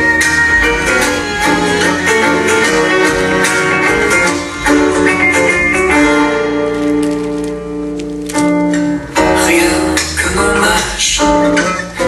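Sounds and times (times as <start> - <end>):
plucked string instruments: 0.0 - 12.0.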